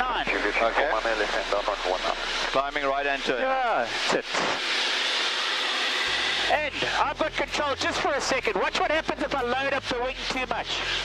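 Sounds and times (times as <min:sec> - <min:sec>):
aircraft cockpit engine hiss: 0:00.3 - 0:11.0.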